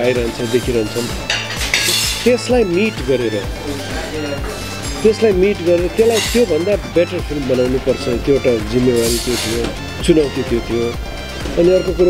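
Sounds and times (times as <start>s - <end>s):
background music: 0.0s - 12.0s
man's voice: 0.0s - 12.0s
dishes and cutlery clinking: 0.5s - 2.6s, 3.4s - 6.9s, 8.9s - 9.8s.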